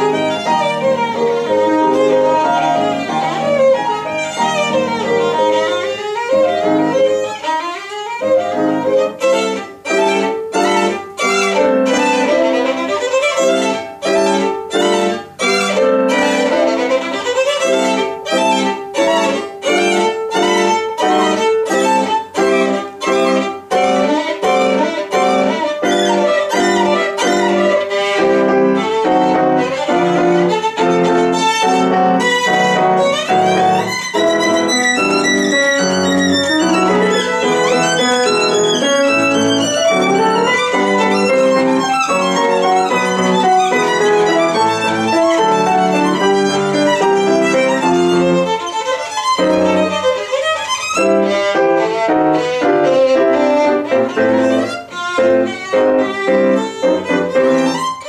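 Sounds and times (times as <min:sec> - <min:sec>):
grand piano accompaniment: 0:00.0 - 0:58.0
solo violin playing: 0:00.0 - 0:58.0.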